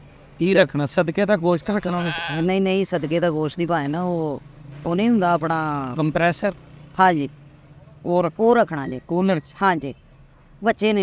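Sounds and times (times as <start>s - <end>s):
person talking rapidly: 0.4s - 7.3s.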